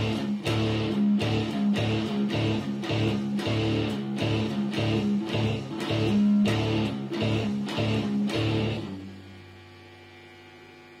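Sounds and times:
electric guitar chord: 0.0s - 11.0s
mains hum from guitar amp: 0.0s - 11.0s.

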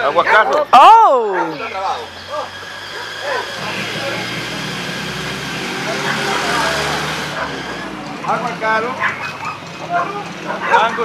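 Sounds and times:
vehicle engine running: 1.6s - 11.0s.

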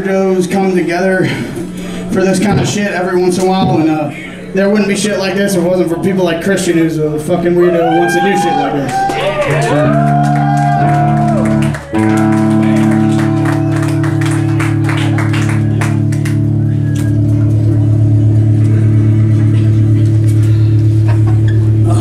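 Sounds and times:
electric guitars droning chord: 9.3s - 22.0s
deep low tone pulsing: 9.7s - 22.0s.

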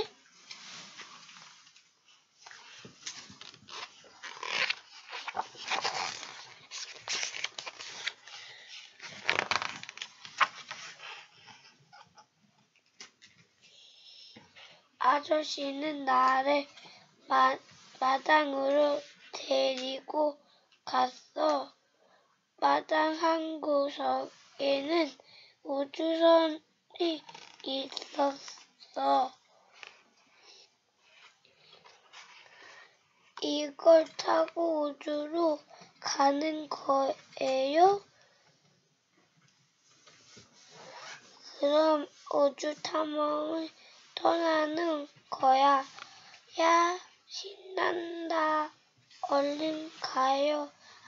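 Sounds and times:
paper page rustling: 0.0s - 11.7s
page snapping: 9.1s - 10.6s.

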